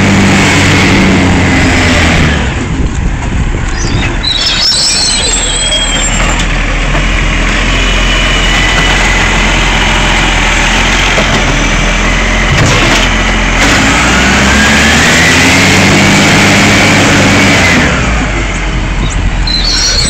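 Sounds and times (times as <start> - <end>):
garbage truck diesel engine: 0.0 - 20.0
high hydraulic whine: 3.5 - 7.0, 17.0 - 20.0.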